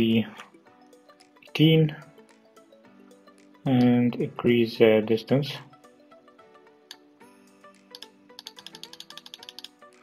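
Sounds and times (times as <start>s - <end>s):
background music: 0.0s - 10.0s
rapid computer clicks: 8.0s - 9.7s.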